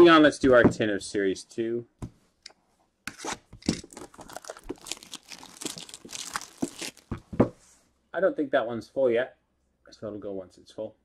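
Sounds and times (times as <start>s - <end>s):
plastic shrink-wrap crackling: 3.6s - 7.3s.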